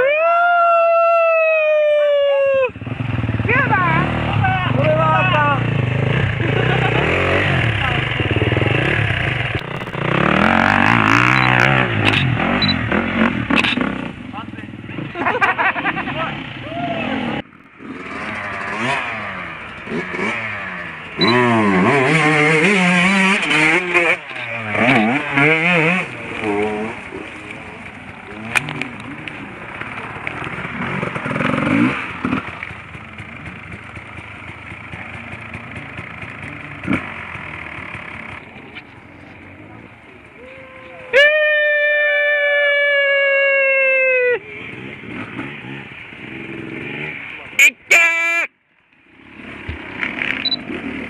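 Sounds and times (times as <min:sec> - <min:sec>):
motorcycle engines revving: 0:00.0 - 0:47.9, 0:48.5 - 0:51.0.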